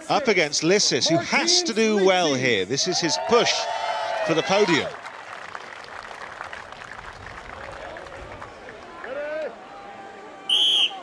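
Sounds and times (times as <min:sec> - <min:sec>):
referee's whistle blast: 0:10.5 - 0:11.0.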